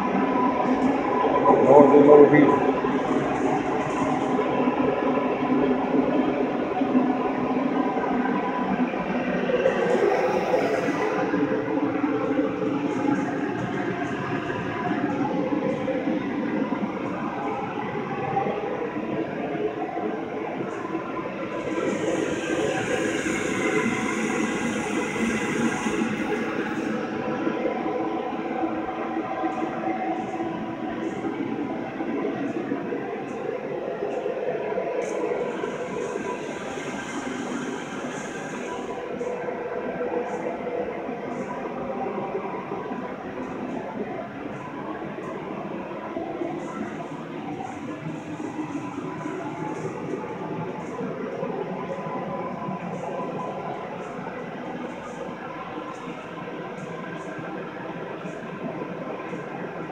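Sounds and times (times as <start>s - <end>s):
steady mechanical drone: 0.0s - 59.9s
high hiss: 35.0s - 39.3s.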